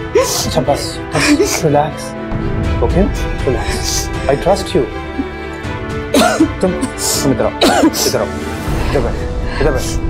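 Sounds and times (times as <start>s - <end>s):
soft background music: 0.0s - 10.0s
woman crying: 1.1s - 1.6s, 6.2s - 8.3s.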